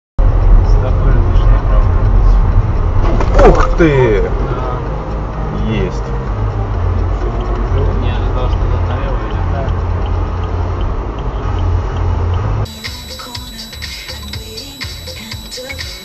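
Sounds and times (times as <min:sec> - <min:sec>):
moving vehicle rumble: 0:00.2 - 0:16.0.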